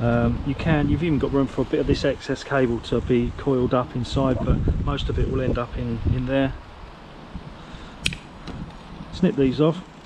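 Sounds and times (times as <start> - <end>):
cable tie snipped: 8.0 - 8.3.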